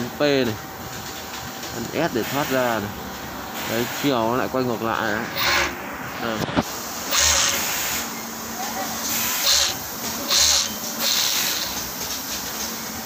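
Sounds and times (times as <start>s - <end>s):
sewing machine motor running: 5.4s - 5.8s, 7.1s - 8.1s, 9.0s - 12.0s.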